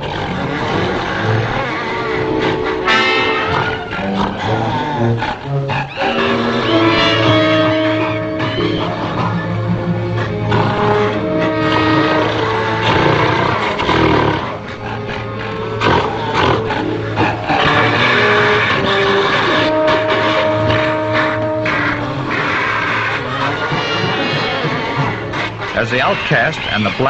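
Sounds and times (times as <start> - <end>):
animal roars: 0.0 - 26.8
film score music: 0.0 - 27.0.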